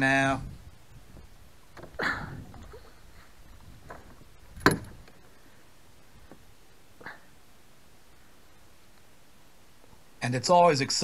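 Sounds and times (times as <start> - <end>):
knocks: 3.8 - 5.2.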